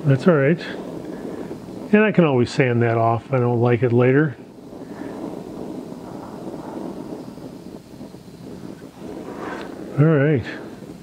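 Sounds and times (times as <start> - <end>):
torch flame hissing: 0.0 - 11.0.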